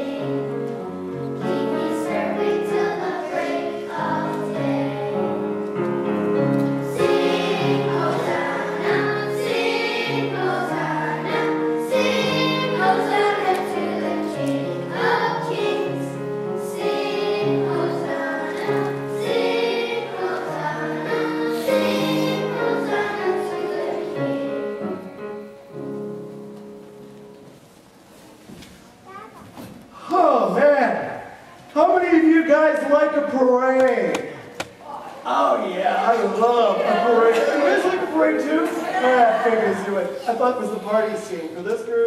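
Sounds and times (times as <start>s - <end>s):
children's choir singing: 0.0s - 27.1s, 35.4s - 41.5s.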